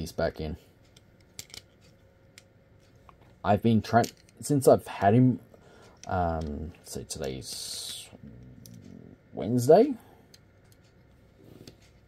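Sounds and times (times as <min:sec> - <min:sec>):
plastic toy parts clicking: 0:01.3 - 0:01.7.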